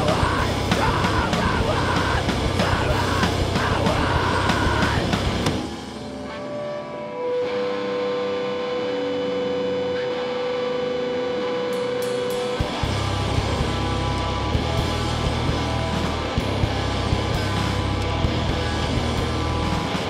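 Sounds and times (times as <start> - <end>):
live rock band playing: 0.0 - 9.5, 11.2 - 20.0
ringing held guitar notes: 5.7 - 20.0.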